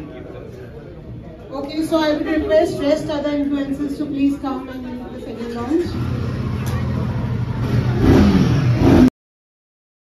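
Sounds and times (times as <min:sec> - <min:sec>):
motorcycle engine revving: 0:05.8 - 0:09.1.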